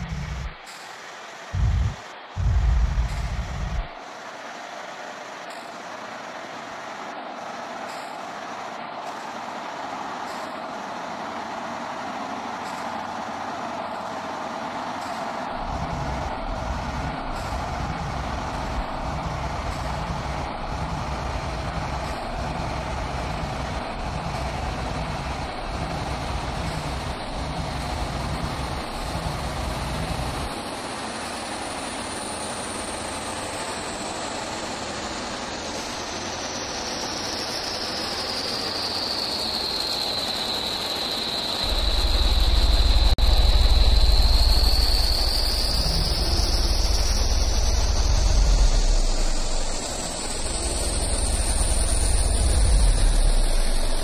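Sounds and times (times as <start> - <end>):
hissing droning noise texture: 0.0 - 54.0
low pulsing bass: 1.6 - 3.9, 41.7 - 49.8
high tone gliding downward: 41.7 - 54.0.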